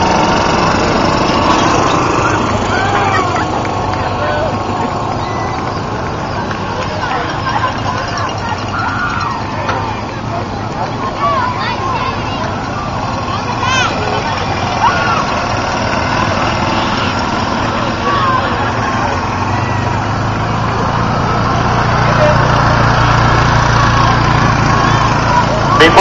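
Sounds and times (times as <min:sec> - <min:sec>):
crowd chatter: 0:00.0 - 0:26.0
small vehicle engine humming: 0:00.0 - 0:26.0.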